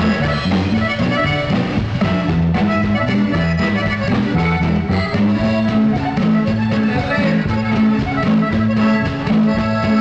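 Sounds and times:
accordion: 0:00.0 - 0:10.0
acoustic guitar: 0:00.0 - 0:10.0
drums playing dance beat: 0:00.0 - 0:10.0
electric bass: 0:00.0 - 0:10.0.

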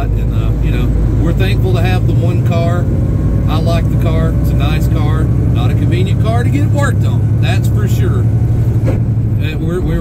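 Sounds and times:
man talking: 0:00.0 - 0:02.9, 0:03.5 - 0:08.4, 0:09.3 - 0:10.0
road noise: 0:00.0 - 0:10.0
truck engine droning: 0:00.0 - 0:10.0.

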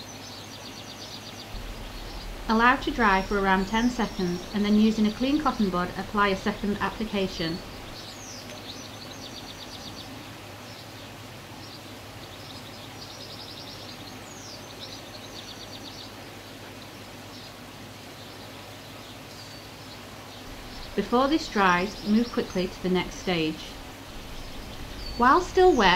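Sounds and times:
songbird singing trill: 0:00.0 - 0:10.9, 0:19.3 - 0:25.9
low background hiss: 0:00.0 - 0:25.9.

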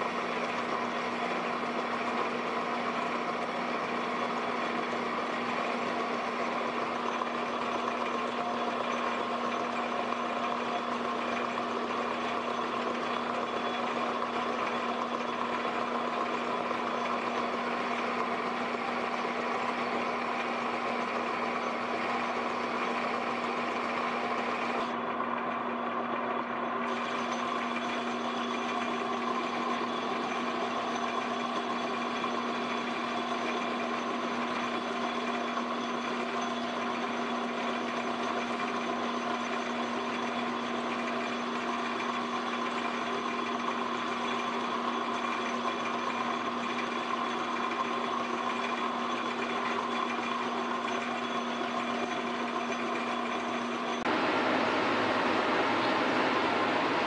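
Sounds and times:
metal lathe humming: 0:00.0 - 0:57.0.

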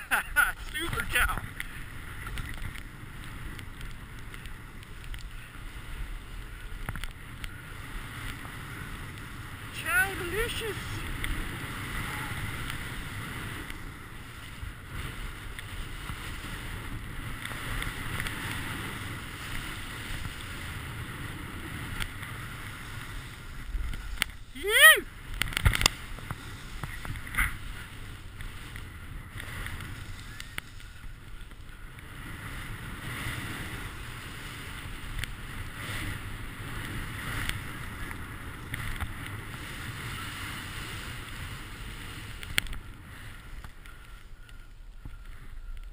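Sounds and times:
skis sliding on snow: 0:00.0 - 0:45.9
wind on microphone: 0:00.0 - 0:45.9
person yelling: 0:09.8 - 0:11.0, 0:24.5 - 0:25.1.

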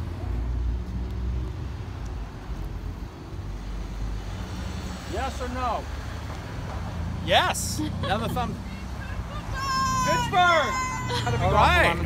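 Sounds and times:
cars passing at low speed: 0:00.0 - 0:12.0.

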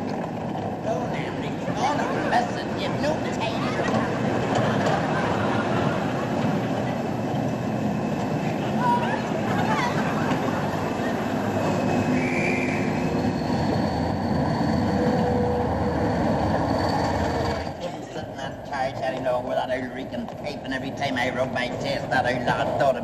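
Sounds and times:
train running noise: 0:00.0 - 0:23.0
faint high whine: 0:06.7 - 0:18.8.

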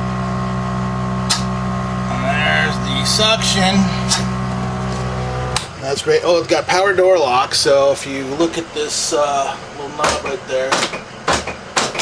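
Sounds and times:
suction pump humming: 0:00.0 - 0:11.8
switch click: 0:01.3 - 0:01.5.

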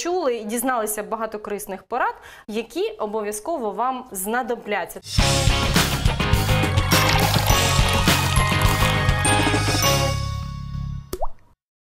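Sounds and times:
rising liquid bloop effect: 0:11.1 - 0:11.5.

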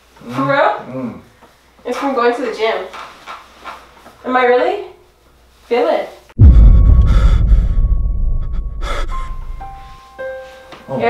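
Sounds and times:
bass-boosted sound effect: 0:06.4 - 0:10.0
gasp-like burst: 0:06.5 - 0:09.6.

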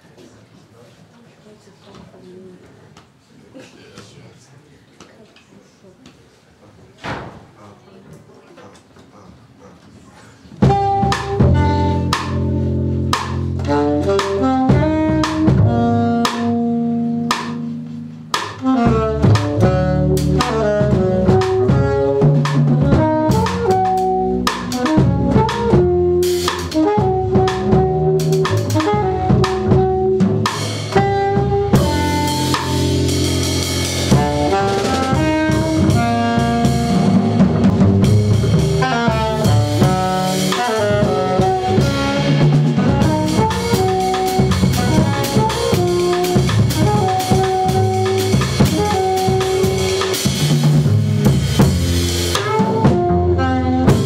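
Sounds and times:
jazz trio playing: 0:10.5 - 0:54.0
alto saxophone melody: 0:10.6 - 0:50.4, 0:52.0 - 0:54.0.

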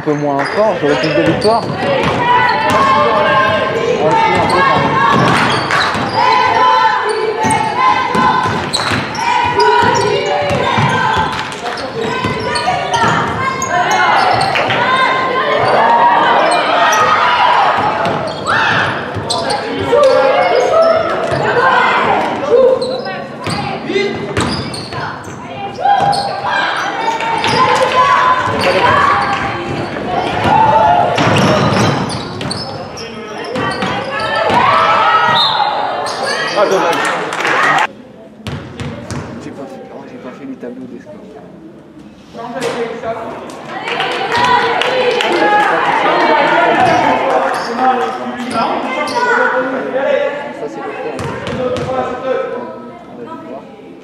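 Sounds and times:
people calling out: 0:00.4 - 0:37.9.

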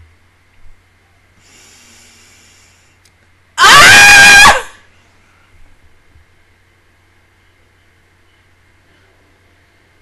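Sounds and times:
woman screaming high-pitched: 0:03.6 - 0:04.8.

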